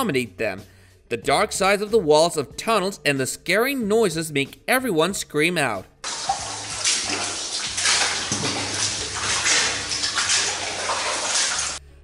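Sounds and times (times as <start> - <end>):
water sloshing and splashing: 6.0 - 11.8.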